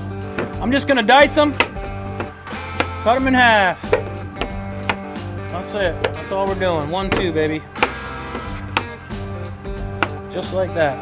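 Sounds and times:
background music: 0.0 - 11.0
knife striking cutting board: 1.6 - 3.0, 3.8 - 5.1, 5.9 - 6.3, 7.1 - 9.0, 10.0 - 10.2.

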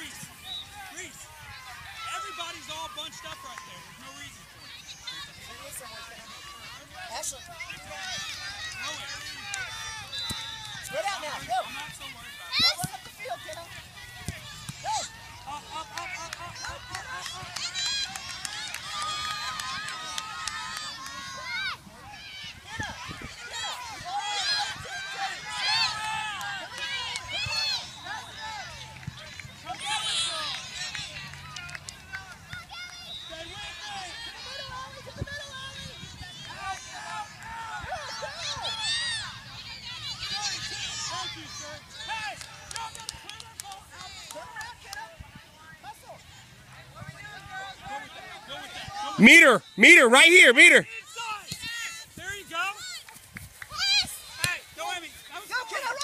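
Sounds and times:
people shouting and calling out: 0.0 - 28.7, 47.2 - 53.0
sideline voices: 49.2 - 50.8.

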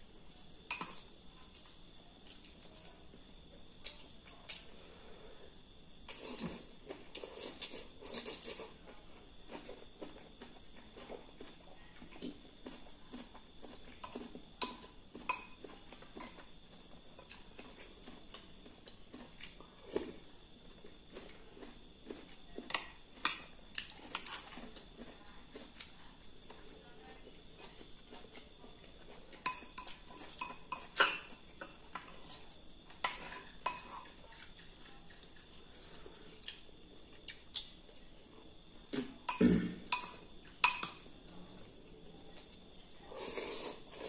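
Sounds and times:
spoon scraping ceramic bowl: 33.0 - 34.2.

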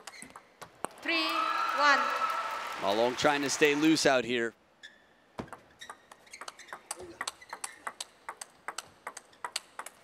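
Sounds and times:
table tennis ball clicks: 5.4 - 10.0.

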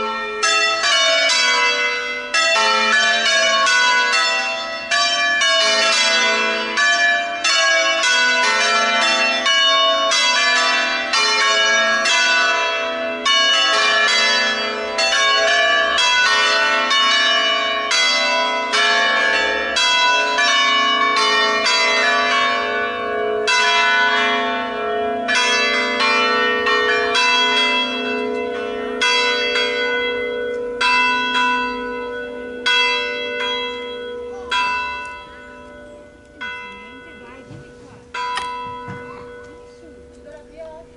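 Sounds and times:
church bells pealing: 0.0 - 40.9.

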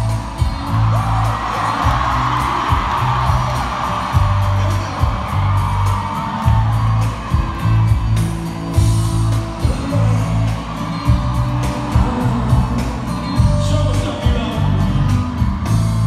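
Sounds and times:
crowd cheering and singing: 0.0 - 16.0
live pop music: 0.0 - 16.0.

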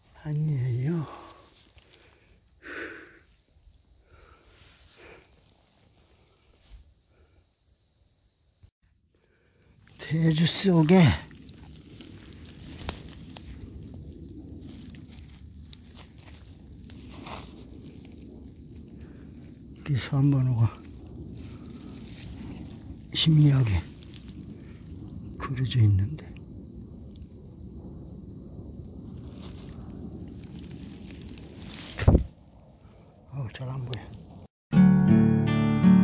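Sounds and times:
crickets chirping: 0.0 - 34.5
gloved hand rustling leaves: 9.8 - 19.6, 20.8 - 24.9, 29.2 - 32.4.

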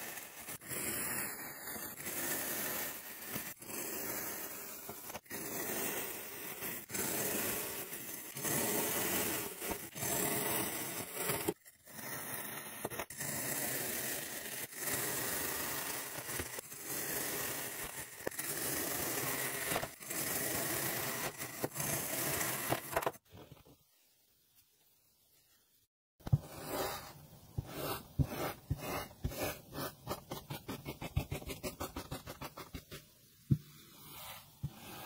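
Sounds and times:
knife slicing through sand: 26.4 - 30.1.

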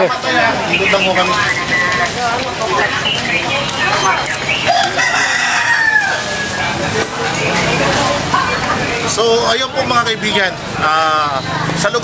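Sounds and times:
street market hubbub: 0.0 - 12.0
rooster crowing: 4.7 - 6.7.

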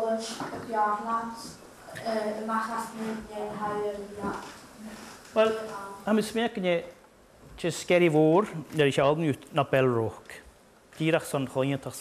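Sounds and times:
man speaking: 5.4 - 7.0, 7.6 - 12.0.

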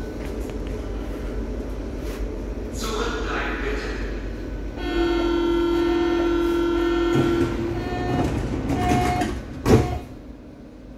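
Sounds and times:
train doors closing: 4.7 - 10.5
short high door warning tone: 4.8 - 10.3.

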